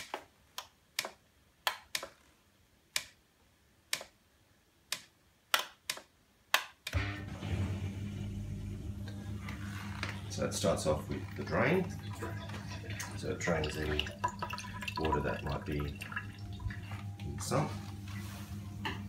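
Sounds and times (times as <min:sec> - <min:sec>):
drain pump humming: 0:07.0 - 0:19.0.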